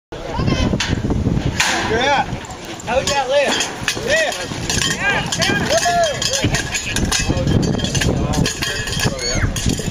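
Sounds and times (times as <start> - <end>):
people shouting: 4.0 - 7.0.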